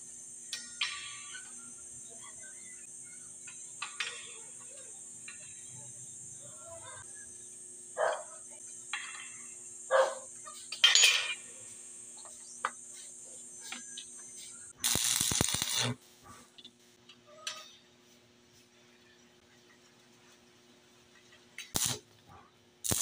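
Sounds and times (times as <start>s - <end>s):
arc welder crackling: 0.0s - 17.0s, 21.6s - 22.2s, 22.8s - 23.0s.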